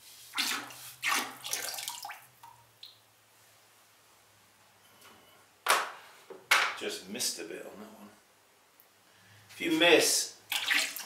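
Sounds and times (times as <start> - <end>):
liquid glaze pouring and splashing: 0.4 - 3.0.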